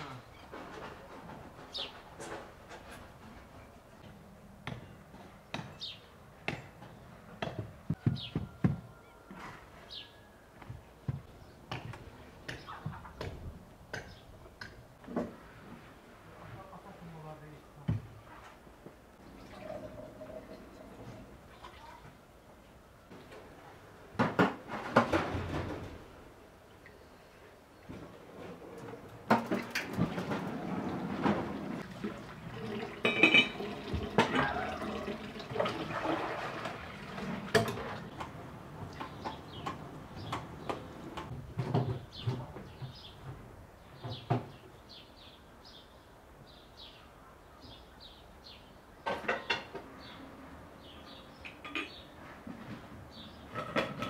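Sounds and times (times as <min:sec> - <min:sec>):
tap water running: 0:31.6 - 0:38.1
dishes clinking in steel sink: 0:32.7 - 0:35.0, 0:51.6 - 0:52.0.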